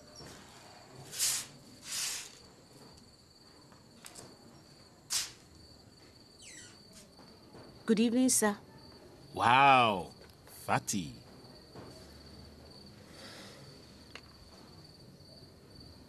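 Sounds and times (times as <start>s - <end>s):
crickets chirping: 0.0s - 16.0s
short hissing noises: 1.0s - 2.4s, 5.1s - 5.5s.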